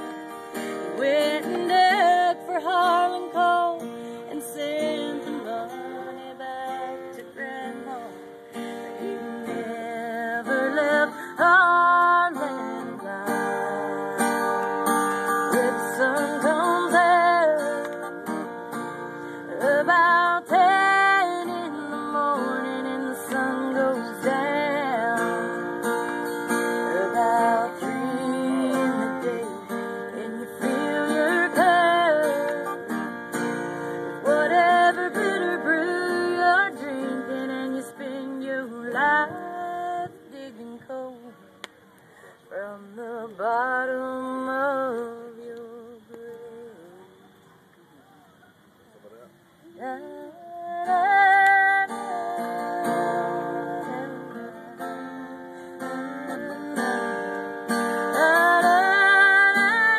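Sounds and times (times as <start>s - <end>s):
person singing with vibrato: 0.0s - 41.6s, 42.3s - 47.7s, 49.6s - 59.9s
acoustic guitar: 0.0s - 59.9s.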